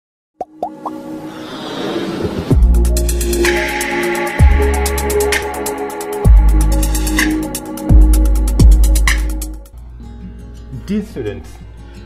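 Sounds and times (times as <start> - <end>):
bloops gliding up in pitch: 0.4 - 1.2
rushing sound: 0.7 - 4.2.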